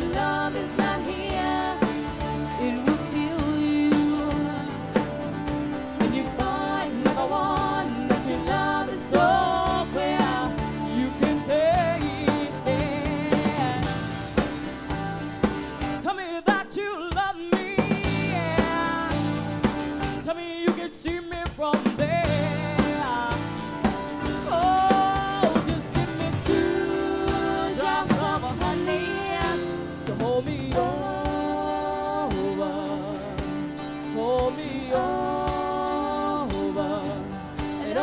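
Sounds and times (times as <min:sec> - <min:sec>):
live band playing: 0:00.0 - 0:38.0.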